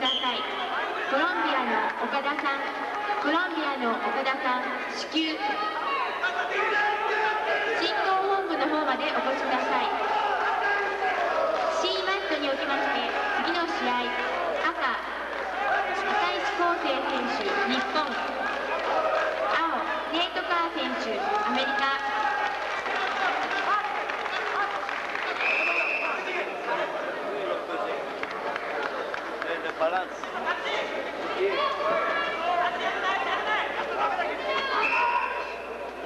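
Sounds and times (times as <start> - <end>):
crowd chatter: 0.0 - 36.0.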